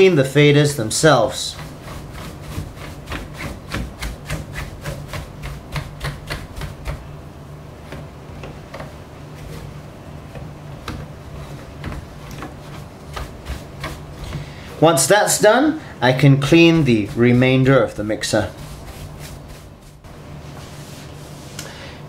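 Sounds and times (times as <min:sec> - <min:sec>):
bristle brush scrubbing: 0:00.9 - 0:07.1, 0:11.2 - 0:21.6.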